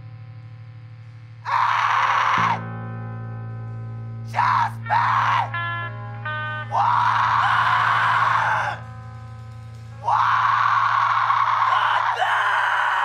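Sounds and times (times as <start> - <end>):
screamed vocals: 1.4 - 2.6, 4.3 - 5.6, 6.7 - 8.8, 10.0 - 13.0
low held note: 2.4 - 10.1.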